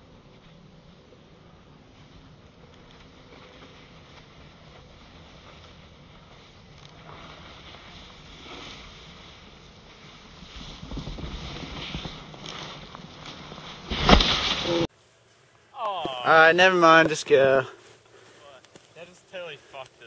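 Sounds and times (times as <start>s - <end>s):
snowboard scraping over snow: 0.0s - 14.9s.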